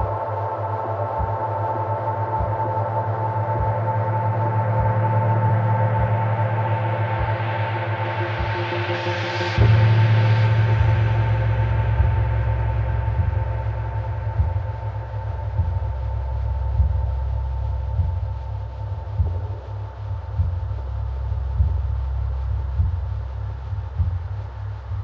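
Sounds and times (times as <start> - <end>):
deep low drone: 0.0 - 25.0
soft low percussion: 0.0 - 25.0.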